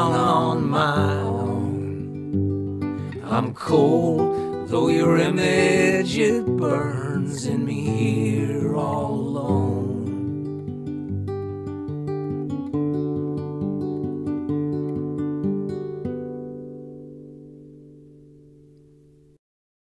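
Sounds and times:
classical guitar fingerpicked: 0.0s - 19.4s.

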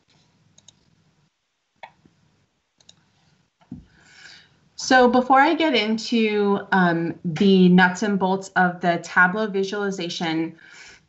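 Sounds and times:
low steady hum: 0.0s - 11.0s
faint sharp clicks: 0.6s - 0.9s, 2.8s - 3.0s.

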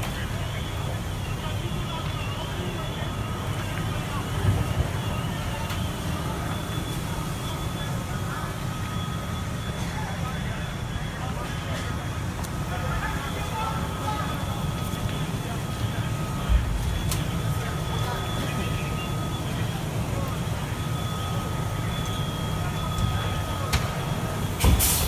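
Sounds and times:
diesel engine rumbling: 0.0s - 25.0s.

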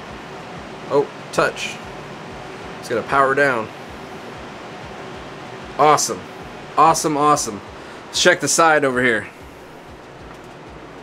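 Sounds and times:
fan hiss: 0.0s - 11.0s
man speaking: 0.9s - 1.9s, 2.8s - 3.8s, 5.8s - 9.4s.

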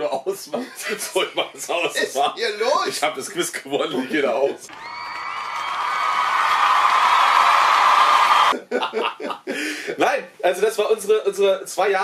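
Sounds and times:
men laughing: 0.5s - 2.2s, 8.5s - 9.8s.

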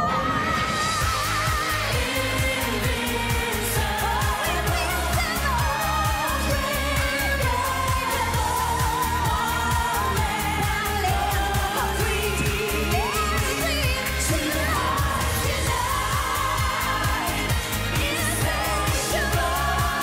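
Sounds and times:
dance-pop backing track: 0.0s - 20.0s
woman singing: 0.0s - 20.0s.

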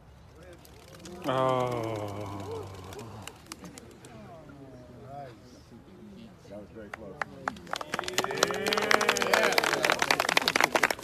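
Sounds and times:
faint voices murmuring: 0.3s - 11.0s.

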